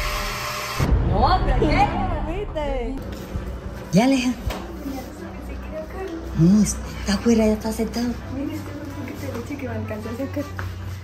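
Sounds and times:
blender whirring: 0.0s - 0.9s.

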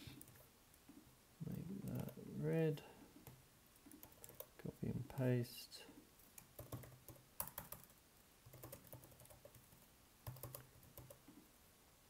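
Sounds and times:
faint typing on computer keyboard: 0.0s - 2.3s, 3.1s - 5.3s, 6.2s - 11.4s.

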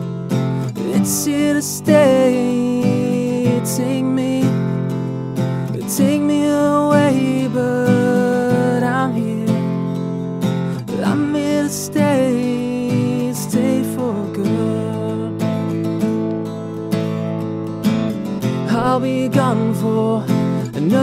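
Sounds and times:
acoustic guitar strummed and picked: 0.0s - 21.0s.

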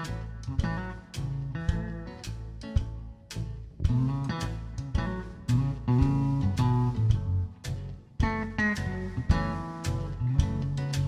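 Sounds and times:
low bass notes: 0.0s - 11.0s
plucked electric guitar melody: 0.0s - 11.0s
strummed guitar: 0.0s - 11.0s.

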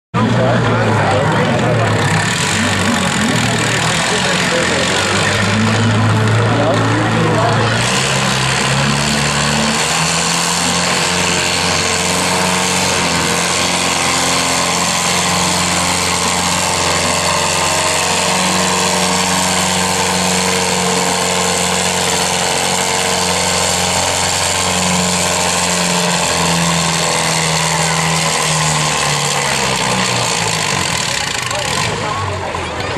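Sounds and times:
tractor engine under load: 0.2s - 32.9s.

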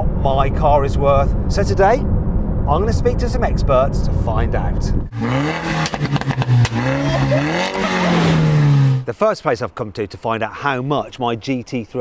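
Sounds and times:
car engine revving: 5.1s - 9.1s.

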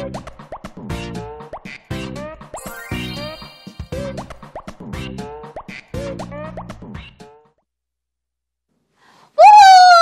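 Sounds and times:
bouncy children's music jingle: 2.0s - 6.2s.

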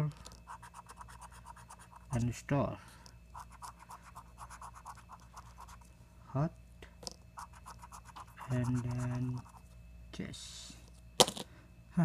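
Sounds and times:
scratching lottery ticket: 0.2s - 2.4s, 3.3s - 5.9s, 7.4s - 9.7s.

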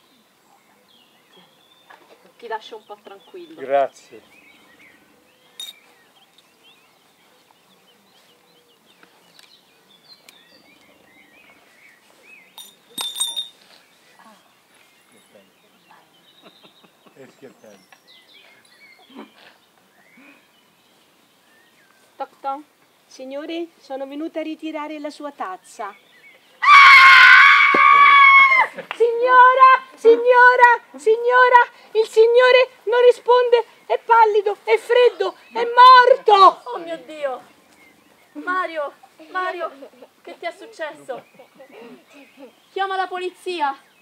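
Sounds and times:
small birds chirping: 0.0s - 27.2s, 28.8s - 44.0s
cup clinking on hard surface: 5.6s - 5.8s, 12.6s - 13.6s
woman screaming: 26.6s - 28.7s.

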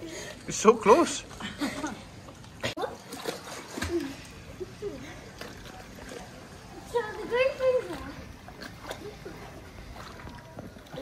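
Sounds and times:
water splashing from swimming: 0.0s - 11.0s
faint voices: 3.9s - 11.0s.

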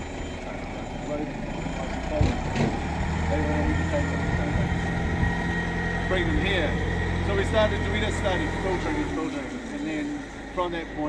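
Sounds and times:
low engine hum: 0.0s - 11.0s
man speaking: 6.0s - 11.0s.

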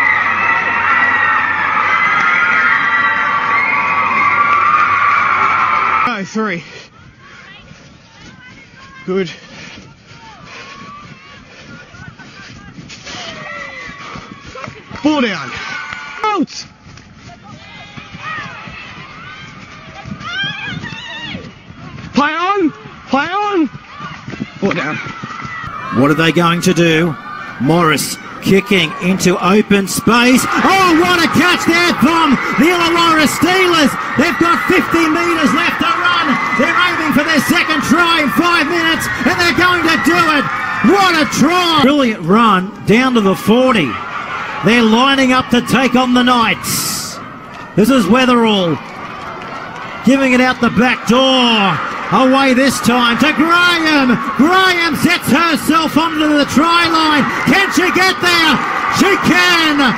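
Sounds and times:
players and spectators shouting: 0.0s - 12.0s, 12.6s - 16.5s, 17.3s - 59.9s
excited man sports commentary: 6.0s - 6.6s, 9.1s - 9.3s, 15.0s - 15.6s, 22.1s - 23.7s, 24.6s - 25.0s, 25.7s - 48.9s, 49.9s - 59.9s.

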